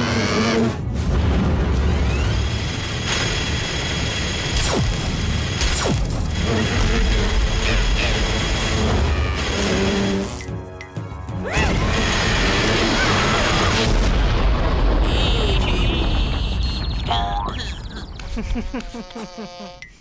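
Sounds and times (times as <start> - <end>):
energy blasts: 0.2 - 10.4
action music: 0.4 - 18.8
mechanical whirring: 1.8 - 10.5.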